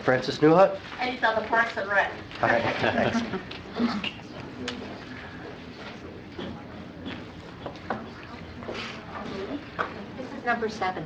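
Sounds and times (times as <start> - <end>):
faint low voice-like hum: 2.4 - 11.0.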